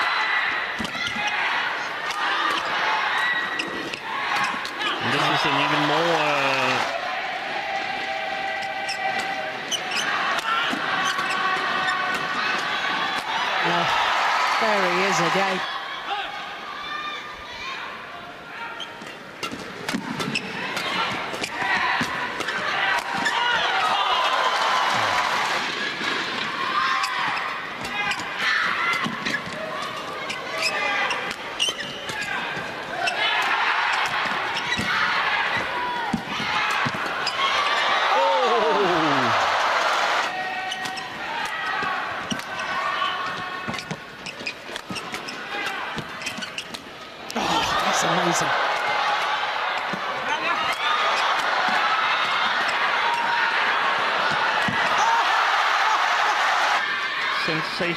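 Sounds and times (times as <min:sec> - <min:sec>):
crowd shouting: 0:00.0 - 0:18.8, 0:19.9 - 0:44.0, 0:47.1 - 0:57.9.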